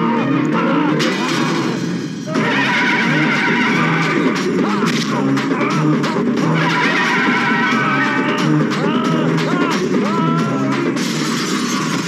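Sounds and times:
dramatic background music: 0.0 - 12.0
man laughing: 7.8 - 10.6.

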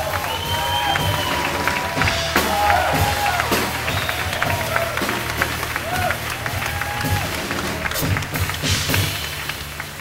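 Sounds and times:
piano: 0.0 - 10.0.

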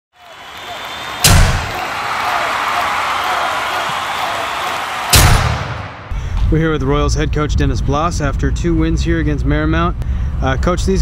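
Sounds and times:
booming thuds: 1.2 - 1.8, 5.1 - 6.6.

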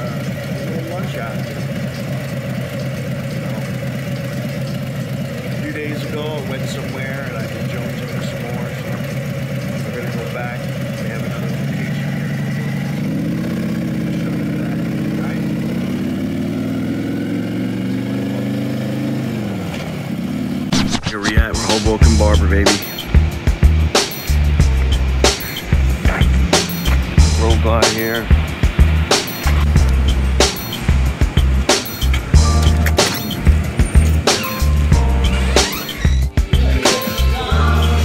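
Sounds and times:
motorcycle engine idling and pulling away: 0.0 - 20.7, 22.1 - 38.0.

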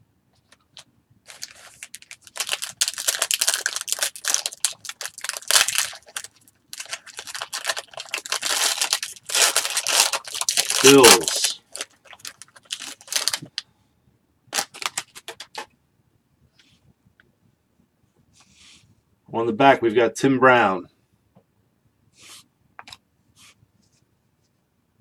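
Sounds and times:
foil wrapper tearing and crinkling: 1.3 - 13.5, 14.5 - 15.6.

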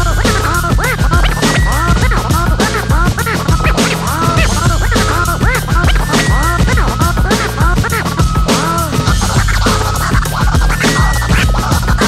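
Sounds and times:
bass line: 0.0 - 12.0
hip-hop beat: 0.0 - 12.0
record scratching: 0.0 - 12.0.

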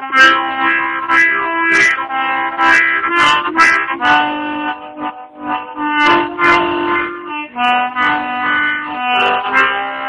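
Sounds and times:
harmonica playing chords: 0.0 - 10.0.

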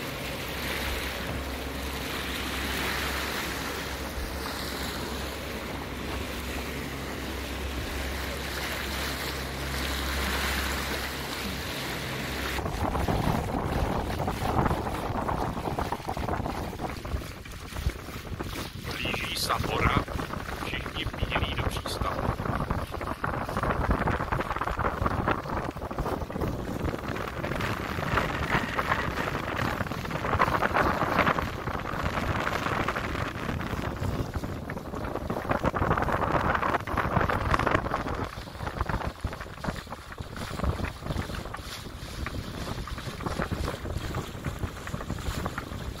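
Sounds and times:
water rushing along a hull: 0.0 - 46.0
wind buffeting microphone: 0.0 - 46.0.

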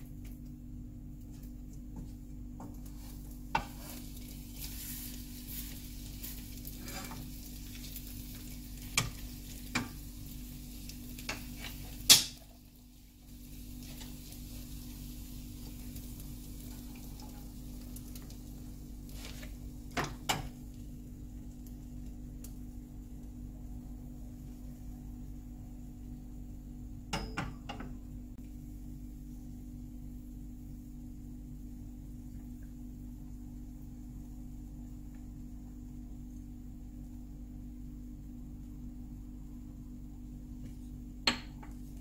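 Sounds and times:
spatula scraping and knocking pan: 2.6 - 7.3, 11.2 - 12.5
egg sizzling in a frying pan: 2.6 - 27.2.

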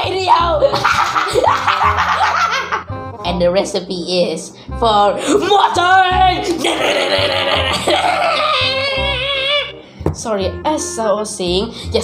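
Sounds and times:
background music: 0.0 - 12.0
boy laughing: 0.6 - 2.9, 6.4 - 9.7.

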